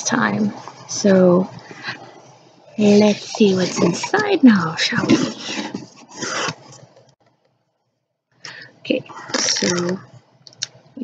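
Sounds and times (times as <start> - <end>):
cardboard flaps scraping: 4.9 - 6.9.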